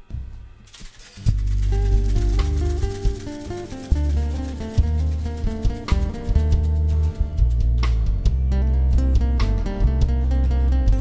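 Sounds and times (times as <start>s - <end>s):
drum and percussion hits: 0.7s - 10.2s
guitar melody: 1.1s - 11.0s
sustained bass notes: 1.2s - 11.0s.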